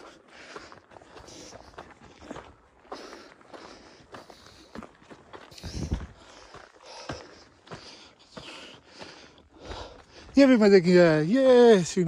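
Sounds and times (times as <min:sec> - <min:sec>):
footsteps on dirt and rock trail: 0:00.0 - 0:12.0.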